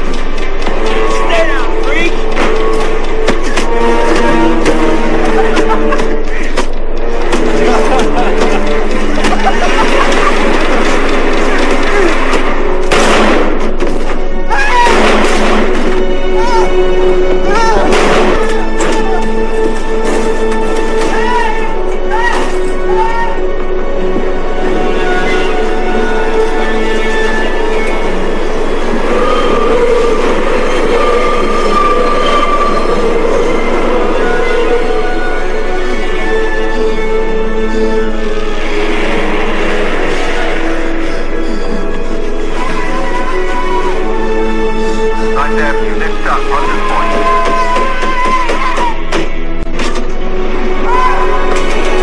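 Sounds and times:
subway train rumble: 22.9 - 45.2
high squealing tones: 25.0 - 35.6.

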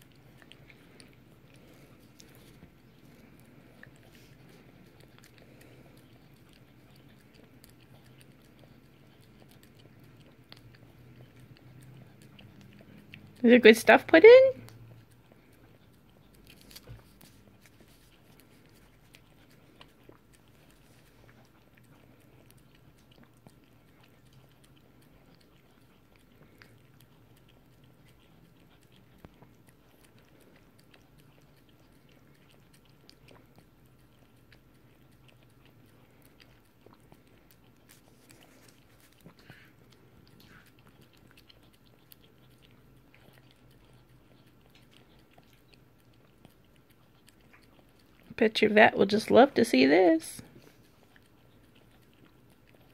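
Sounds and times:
dog licking ice cream: 0.0 - 52.9.

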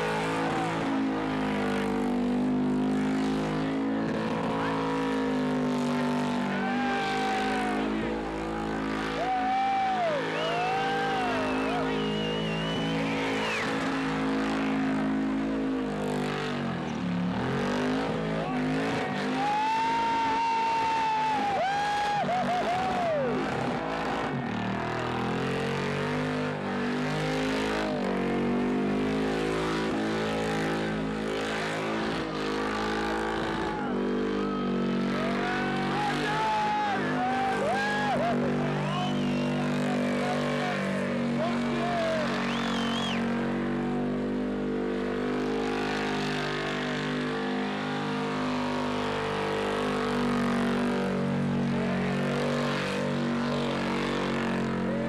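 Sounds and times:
car engine at high revs: 0.0 - 55.0.

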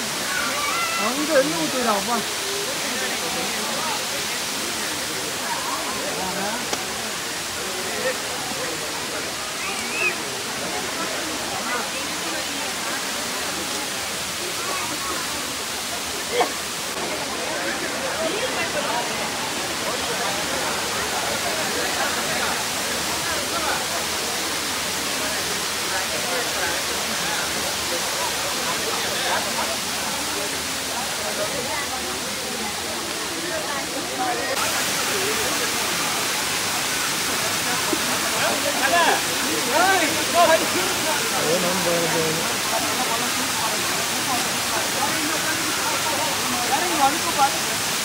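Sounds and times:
people chattering: 0.0 - 48.0
people's voices: 0.0 - 48.0
waterfall rushing: 0.0 - 48.0.

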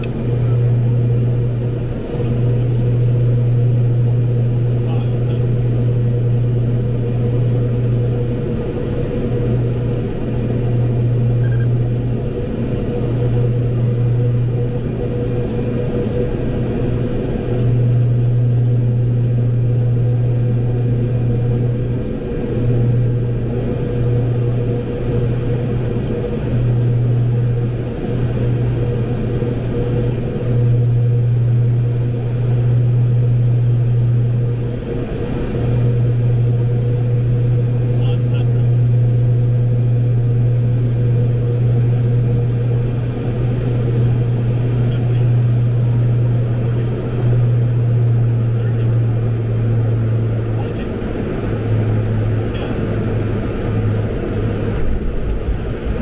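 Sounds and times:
airflow noise: 0.0 - 56.0
propeller drone: 0.0 - 56.0.

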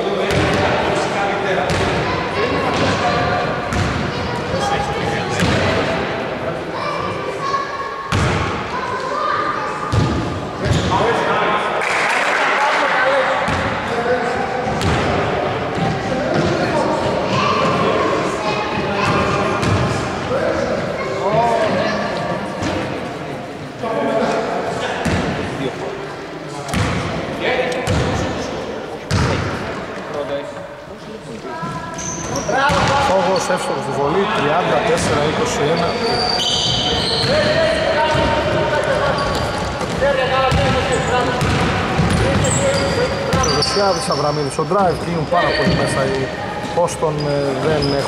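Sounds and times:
basketball bouncing on hardwood: 41.4 - 42.5.

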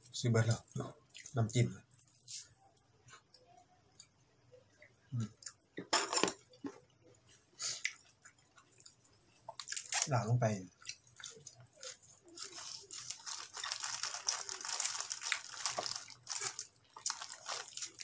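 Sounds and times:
herb sprigs crackling as pulled apart: 11.8 - 18.0.

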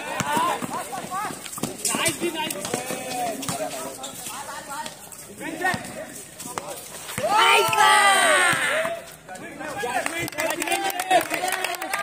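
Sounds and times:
players shouting: 0.0 - 1.4, 7.1 - 9.1
basketball bouncing on concrete: 0.0 - 9.0.

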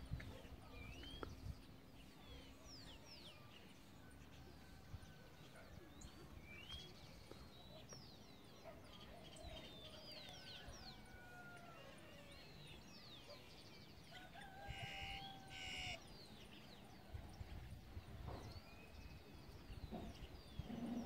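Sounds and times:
birds chirping: 5.4 - 17.1.

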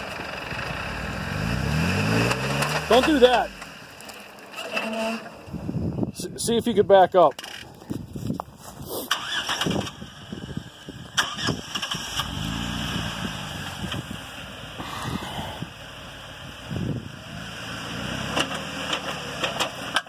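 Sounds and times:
car engine revving: 0.0 - 5.2, 11.2 - 20.0
tires spinning: 0.0 - 5.8, 8.7 - 20.0.

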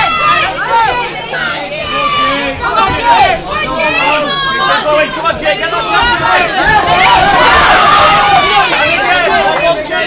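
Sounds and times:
crowd shouting and talking: 0.0 - 10.0.

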